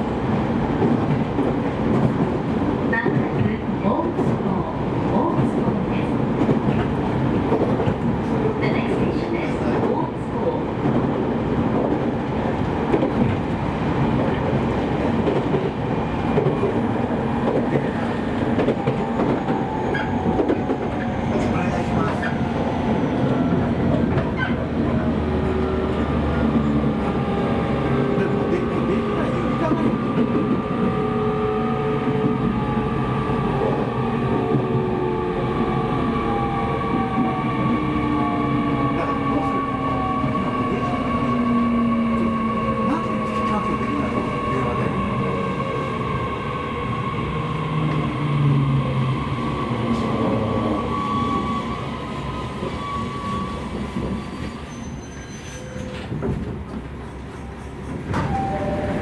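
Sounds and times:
train wheel and rail noise: 0.0 - 59.0.

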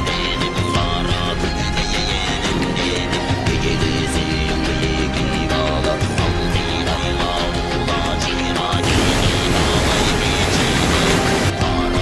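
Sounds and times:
background music: 0.0 - 12.0
waterfall rushing over rock: 8.8 - 11.6.

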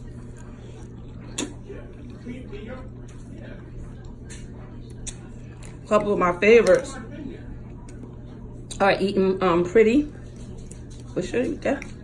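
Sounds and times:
noodles being slurped and chewed: 0.0 - 6.0.

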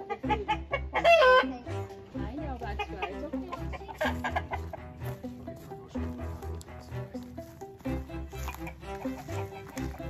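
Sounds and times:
chickens clucking: 0.0 - 10.0
music playing: 0.0 - 10.0.

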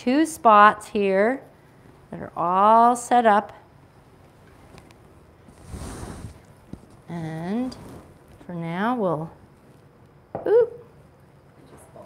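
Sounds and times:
fabric rustling: 5.4 - 8.4.

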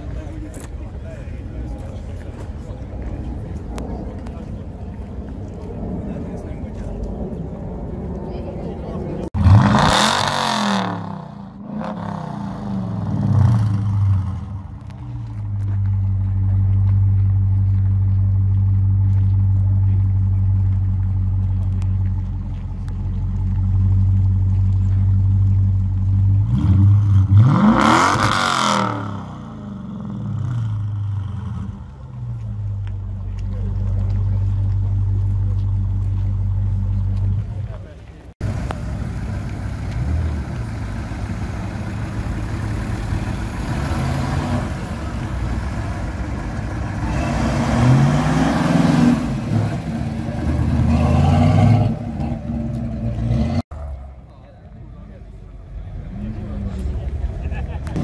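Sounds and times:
crowd chatter: 0.0 - 10.2, 31.4 - 43.4, 51.9 - 58.0
car engine idling and revving: 0.0 - 58.0
car engine rumbling and revving: 0.0 - 58.0.

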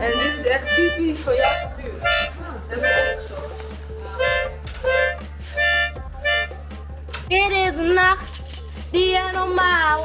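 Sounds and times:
toy saxophone toots: 4.2 - 6.6.

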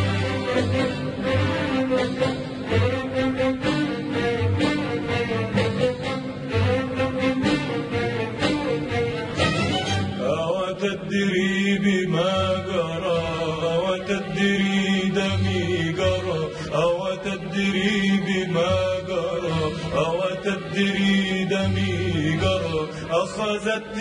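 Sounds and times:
string orchestra: 0.0 - 24.0
man singing ornamented phrases: 10.2 - 24.0.

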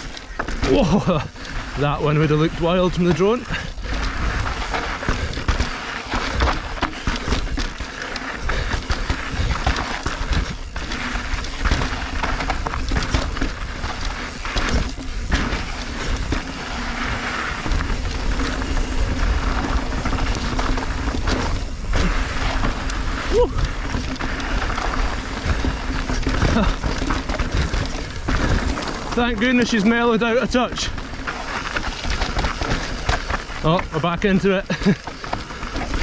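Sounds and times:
bike frame clattering over stones: 0.0 - 36.0
tyres crunching on grit: 0.0 - 36.0
wind rumbling on microphone: 0.0 - 36.0.

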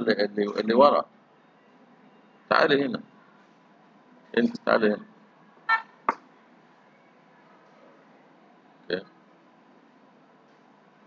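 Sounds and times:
man saying a word: 0.0 - 0.9.

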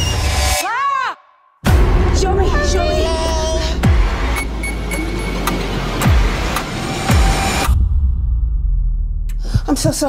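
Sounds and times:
trailer music: 0.0 - 0.6, 1.6 - 9.6
low rumble: 1.7 - 9.8.

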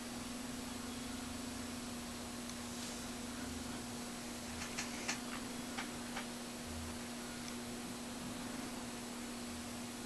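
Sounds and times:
low even hum: 0.0 - 10.0
steady hiss: 0.0 - 10.0.

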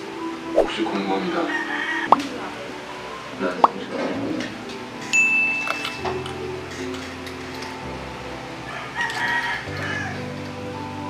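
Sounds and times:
background music sustained notes: 0.0 - 11.0
rooster crowing: 8.7 - 10.3.

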